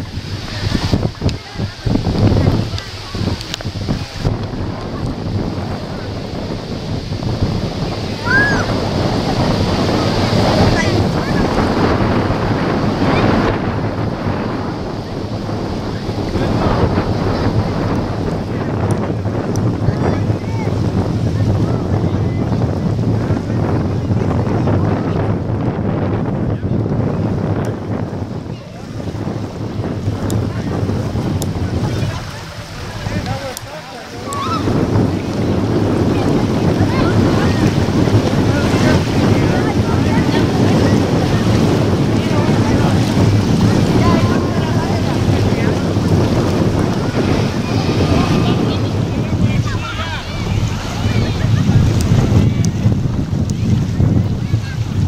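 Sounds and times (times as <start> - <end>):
small waves washing onto shore: 0.0 - 55.0
wind buffeting microphone: 0.0 - 55.0
distant voices calling out: 30.8 - 52.5.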